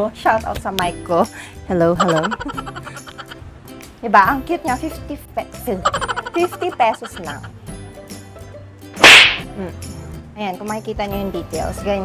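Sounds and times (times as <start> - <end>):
faint background music: 0.0 - 12.0
short sharp swish: 9.0 - 9.5.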